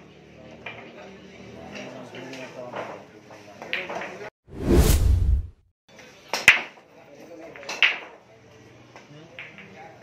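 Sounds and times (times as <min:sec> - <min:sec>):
whoosh with deep rumble: 0:04.5 - 0:05.6.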